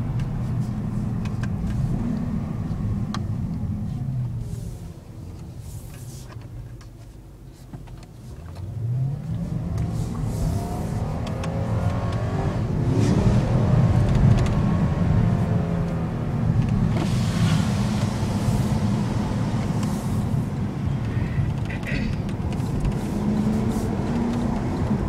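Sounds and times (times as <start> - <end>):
car engine accelerating: 0.0 - 5.4, 8.5 - 25.0.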